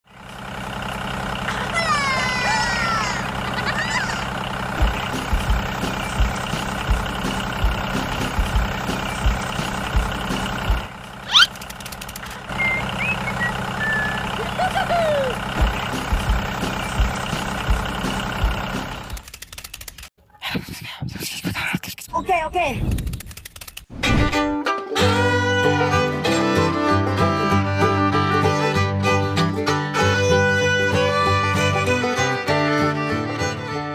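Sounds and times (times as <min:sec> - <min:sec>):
tractor engine running: 0:00.0 - 0:20.1, 0:22.9 - 0:33.9
short chirps: 0:11.3 - 0:14.4.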